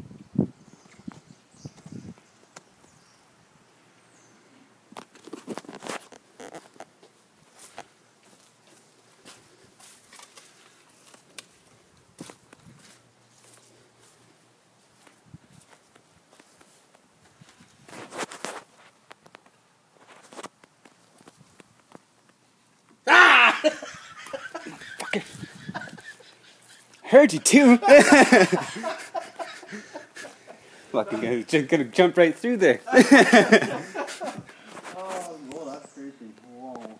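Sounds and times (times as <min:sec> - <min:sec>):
footsteps: 0:04.9 - 0:22.1, 0:24.2 - 0:35.8.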